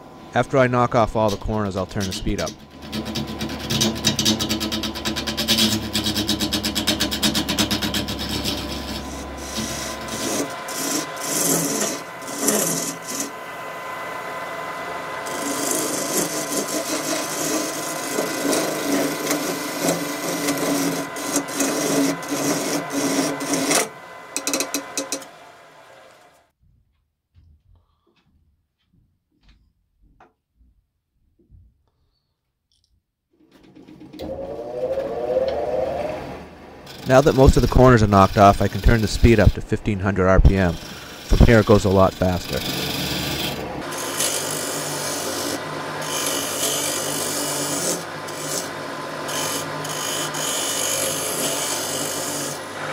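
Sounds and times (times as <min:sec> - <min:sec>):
lathe motor whine: 0:01.2 - 0:26.4, 0:33.8 - 0:52.9.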